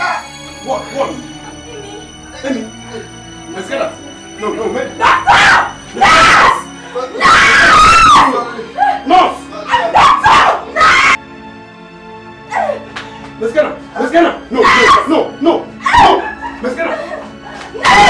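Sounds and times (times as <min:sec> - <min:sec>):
film music: 0:00.0 - 0:18.0
person screaming and wailing: 0:07.2 - 0:09.0, 0:15.8 - 0:17.2, 0:17.8 - 0:18.0.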